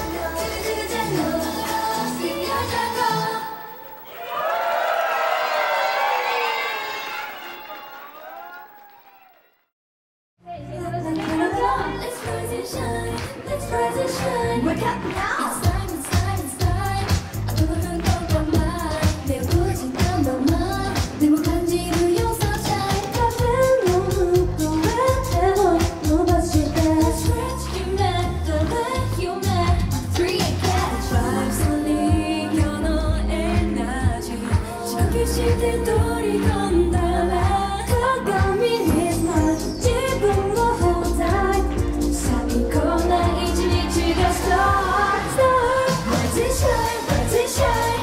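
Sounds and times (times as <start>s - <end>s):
pop backing with drum beat: 0.0s - 3.3s, 11.2s - 48.0s
female vocal group singing pop: 0.0s - 3.9s, 10.5s - 48.0s
audience cheering and shouting: 4.1s - 9.5s.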